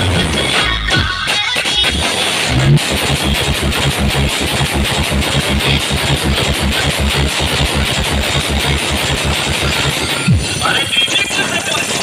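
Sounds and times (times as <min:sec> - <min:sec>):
crowd noise: 0:00.0 - 0:12.0
engine idling with rapid thudding: 0:00.0 - 0:12.0
street noise: 0:00.0 - 0:12.0.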